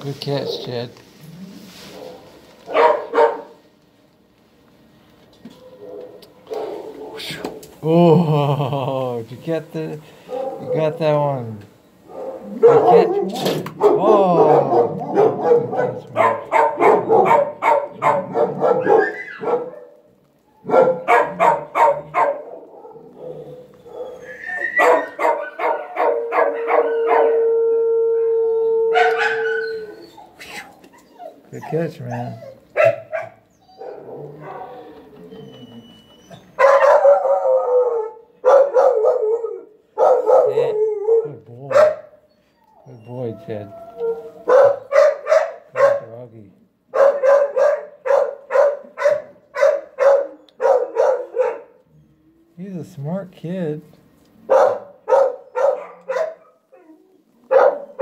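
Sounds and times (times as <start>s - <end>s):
dogs barking: 0.2s - 0.9s, 1.8s - 3.6s, 5.5s - 7.4s, 10.2s - 11.3s, 12.0s - 27.6s, 28.8s - 35.1s, 36.2s - 46.2s, 46.9s - 52.0s, 54.4s - 58.0s
dog howling: 12.1s - 45.6s, 54.6s - 58.0s.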